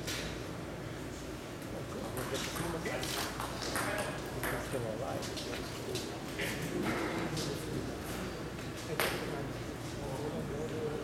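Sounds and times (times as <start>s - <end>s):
voices in a hall: 1.7s - 11.0s.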